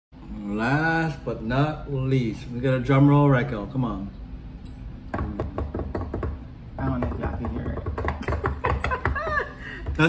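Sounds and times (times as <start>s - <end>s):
hands drumming on a tabletop: 5.2s - 10.0s.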